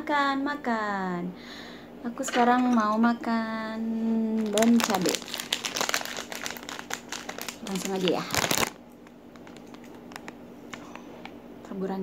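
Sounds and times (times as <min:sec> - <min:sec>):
plastic packet crinkling: 0:04.4 - 0:10.4.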